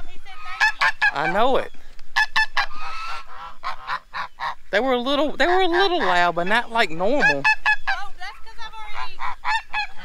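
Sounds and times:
geese honking: 0:00.0 - 0:10.0.

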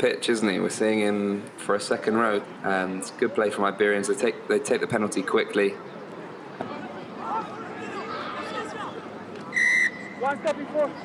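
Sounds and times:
faint shouts of players: 0:06.6 - 0:11.0
referee's whistle blast: 0:09.5 - 0:10.2.

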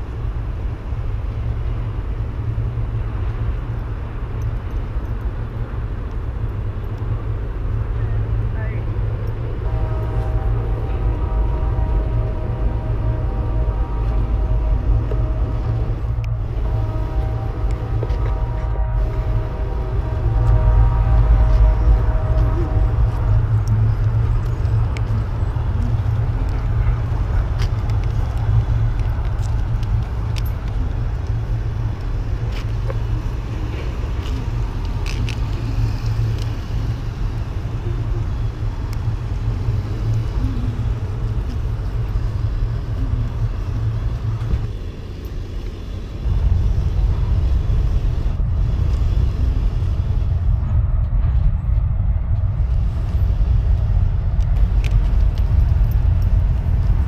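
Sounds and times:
vehicle rolling over asphalt: 0:14.4 - 0:57.0.

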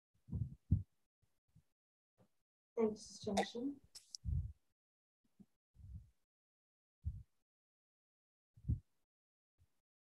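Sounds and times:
soft low thumps: 0:00.3 - 0:00.9, 0:04.2 - 0:04.6, 0:07.0 - 0:07.3, 0:08.6 - 0:08.9.

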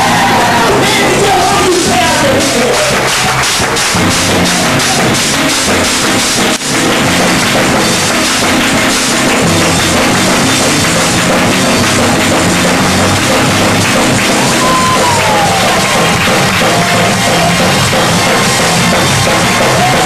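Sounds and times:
drum kit: 0:00.0 - 0:20.0
electric bass guitar: 0:00.0 - 0:20.0.

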